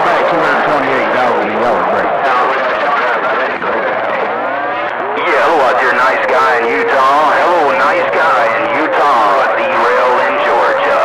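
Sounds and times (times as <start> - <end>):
garbled radio voice: 0.0 - 11.0
radio static: 0.0 - 11.0.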